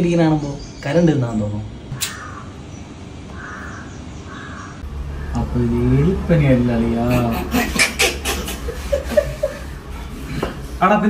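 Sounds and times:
crow cawing: 2.0 - 2.6, 3.3 - 5.4.

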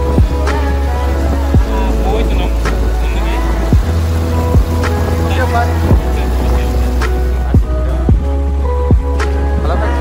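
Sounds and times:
music with deep bass: 0.0 - 10.0.

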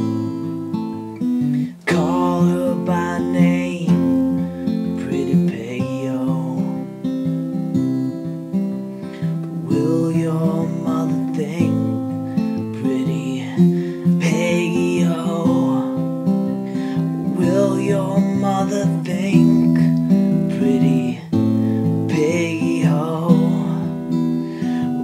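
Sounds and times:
acoustic guitar strummed: 0.0 - 25.0
man singing: 1.5 - 7.4, 9.2 - 25.0.

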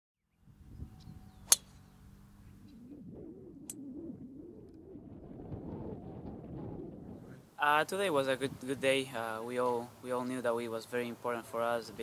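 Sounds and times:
faint outdoor ambience: 0.3 - 12.0
golf club striking ball: 1.4 - 1.9.

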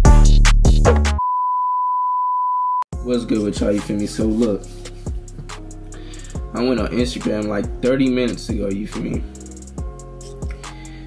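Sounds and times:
electronic music with heavy beat: 0.0 - 1.2, 3.0 - 11.0.

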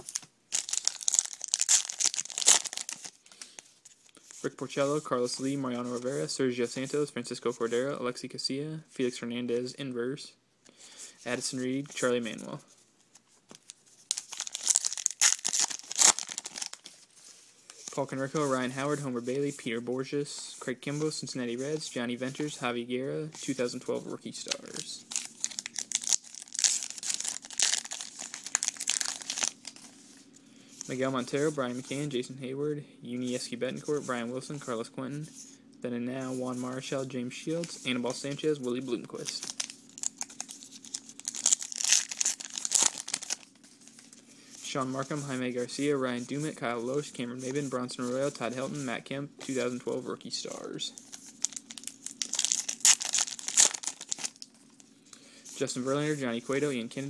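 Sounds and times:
card pack wrapper crinkling: 0.0 - 4.3, 13.5 - 17.0, 24.5 - 30.0, 38.5 - 44.2, 51.0 - 54.6.

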